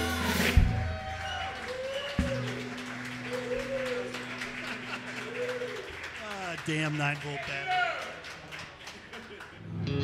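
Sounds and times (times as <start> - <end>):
light applause: 0.7 - 9.7.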